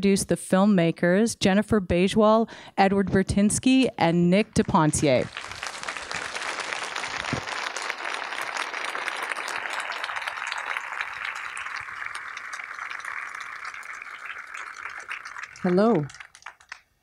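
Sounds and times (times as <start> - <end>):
audience applauding: 4.5 - 16.9.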